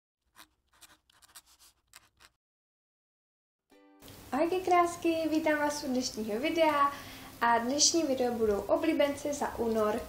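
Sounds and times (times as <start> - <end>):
pen scratching on paper: 0.2 - 2.4.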